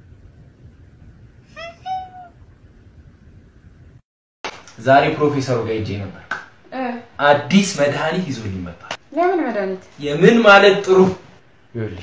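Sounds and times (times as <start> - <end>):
cat meowing: 1.6 - 2.3.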